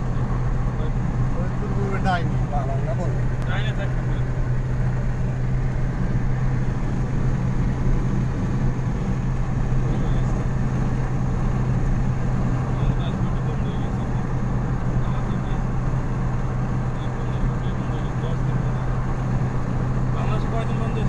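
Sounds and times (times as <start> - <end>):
vehicle cabin road drone: 0.0 - 21.0.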